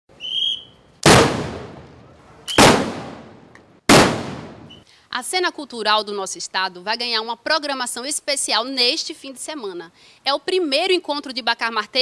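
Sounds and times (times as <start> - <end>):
short high whistle: 0.1 - 0.8
blunderbuss shots: 1.0 - 4.8.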